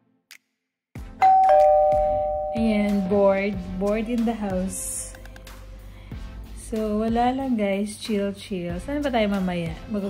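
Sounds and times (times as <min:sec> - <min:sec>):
two-note doorbell chime: 0:01.2 - 0:03.9.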